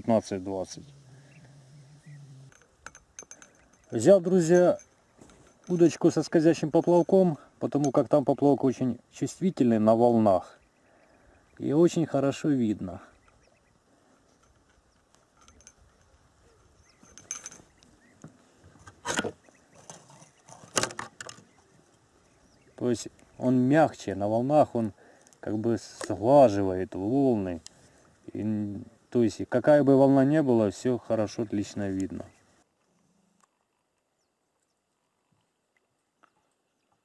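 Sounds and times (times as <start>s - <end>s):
fishing tackle knocks and clicks: 2.5s - 6.0s, 17.0s - 21.5s
fishing line and hook clicks: 2.5s - 6.3s, 14.4s - 16.2s.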